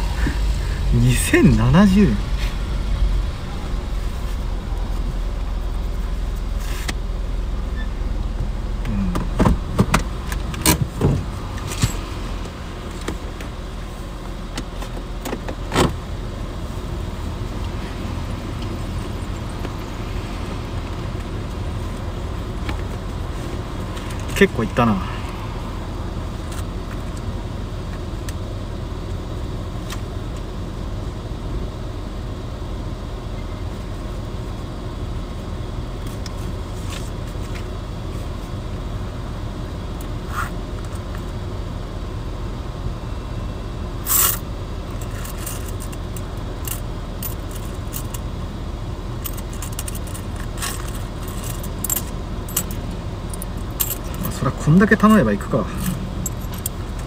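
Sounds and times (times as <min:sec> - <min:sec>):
car idling from inside cabin: 0:00.0 - 0:57.0.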